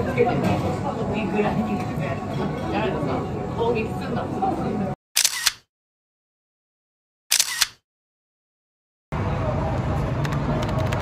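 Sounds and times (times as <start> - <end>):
camera shutter double click: 5.2 - 5.7, 7.3 - 7.8.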